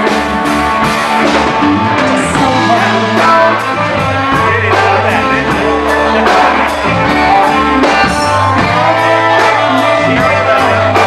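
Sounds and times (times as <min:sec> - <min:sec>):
electric guitar: 0:00.0 - 0:11.0
rock band playing: 0:00.0 - 0:11.0
woman singing: 0:02.1 - 0:11.0.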